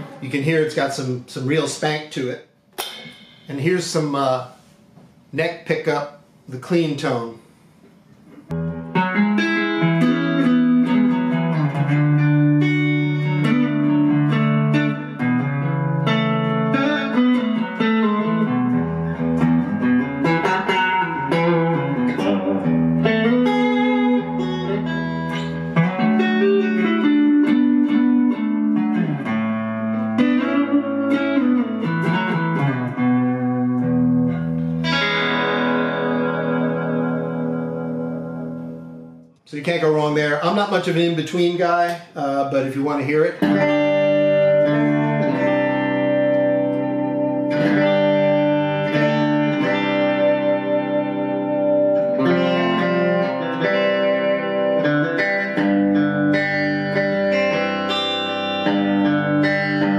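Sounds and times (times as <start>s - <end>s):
clean electric guitar chords: 8.4s - 39.4s, 43.4s - 59.9s.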